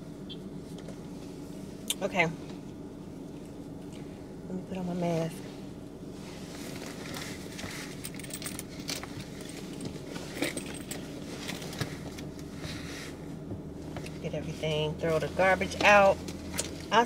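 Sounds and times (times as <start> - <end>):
handbag rustling: 6.5 - 12.1
metal chain jingling and clicking: 8.0 - 11.0.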